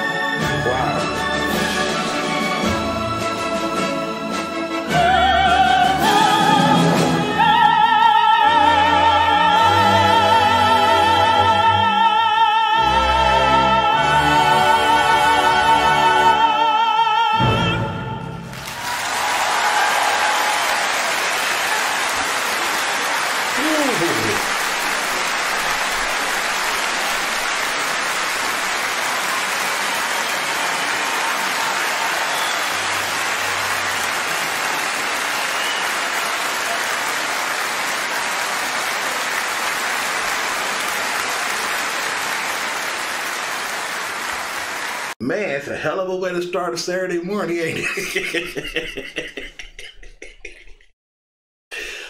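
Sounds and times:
audience applauding: 18.5s - 45.2s
shout from crowd: 18.6s - 22.3s, 23.1s - 24.6s, 29.1s - 33.6s.

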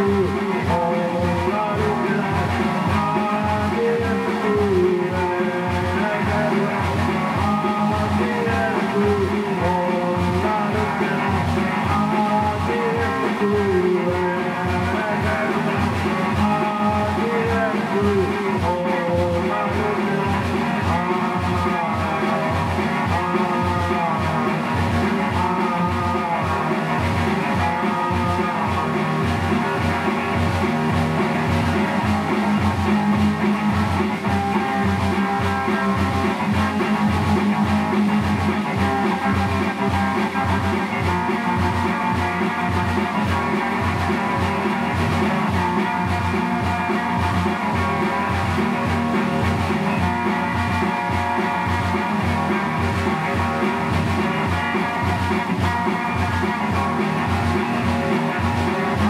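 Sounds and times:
rock ballad on electric guitar: 0.0s - 59.0s
steady low beat: 0.0s - 59.0s.

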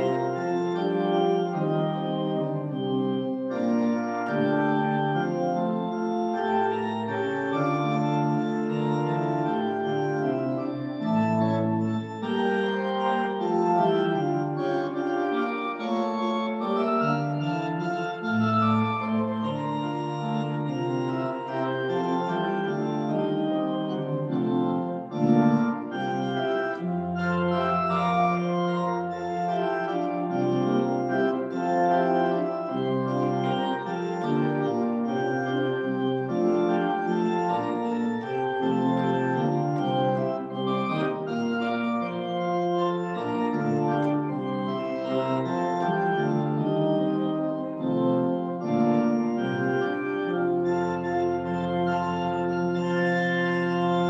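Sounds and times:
church organ playing chords: 0.0s - 54.0s.

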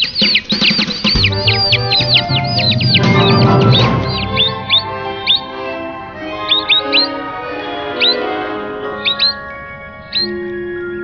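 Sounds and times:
background music with held notes: 0.0s - 11.0s
cartoon birds chirping: 0.0s - 11.0s.

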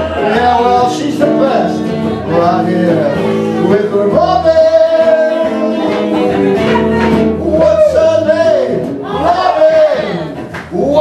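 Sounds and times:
electric guitar: 0.0s - 11.0s
man singing: 0.0s - 11.0s.

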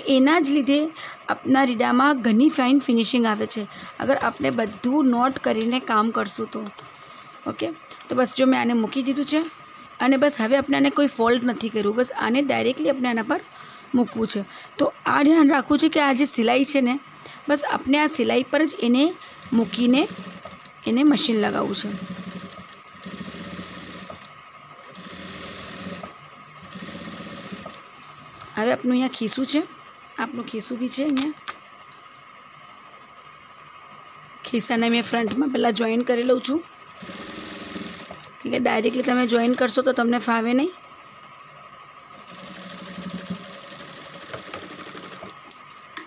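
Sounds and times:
steady high hum: 0.0s - 46.0s
sewing machine stitching: 19.3s - 27.8s, 37.0s - 39.6s, 42.2s - 45.4s.

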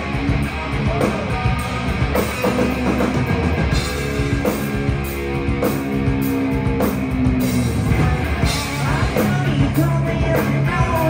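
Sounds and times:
bass guitar: 0.0s - 11.0s
drum kit beat: 0.0s - 11.0s
electric guitars: 0.0s - 11.0s.

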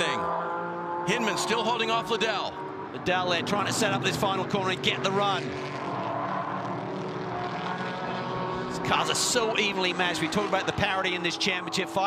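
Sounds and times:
race car engines at speed: 0.0s - 12.0s.

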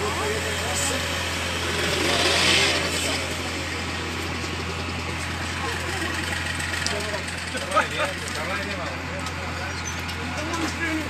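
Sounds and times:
people talking: 0.0s - 1.5s, 2.6s - 11.0s
diesel excavator engine running: 0.0s - 11.0s.

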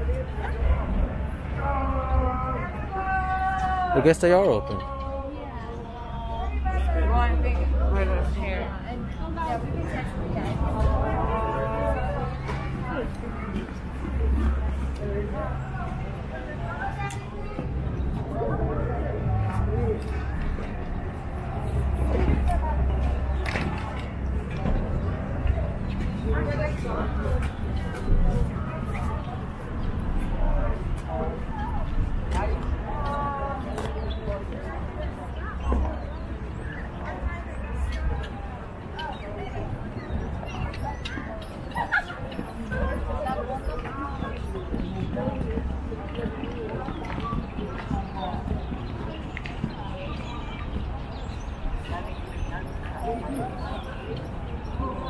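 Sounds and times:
chatter of passers-by: 0.0s - 55.0s
people talking: 0.0s - 55.0s.

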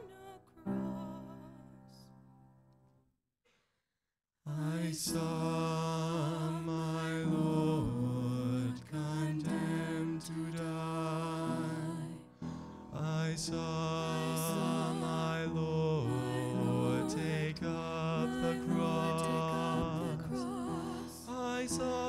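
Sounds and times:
vocal trio singing in harmony: 0.0s - 2.0s, 4.5s - 22.0s.

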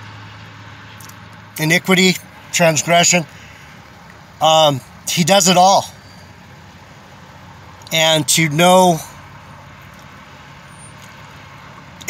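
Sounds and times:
car cabin hum and hiss: 0.8s - 12.0s.

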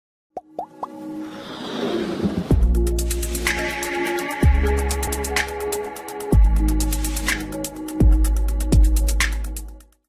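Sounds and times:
electronic music: 2.5s - 9.8s.

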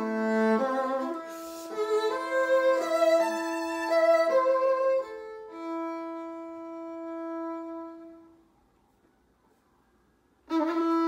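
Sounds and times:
violin and viola chord: 0.0s - 8.4s, 10.4s - 11.0s.

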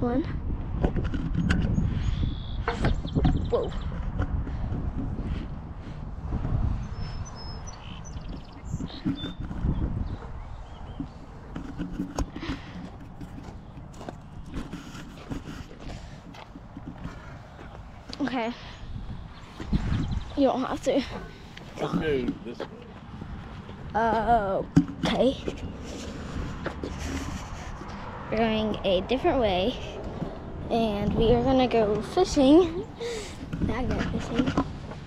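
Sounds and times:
wind buffeting microphone: 0.0s - 35.0s
sharp clicks and knocks: 8.2s - 17.2s.

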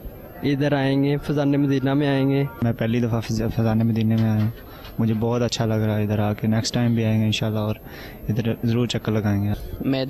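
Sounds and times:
man talking: 0.4s - 10.0s.

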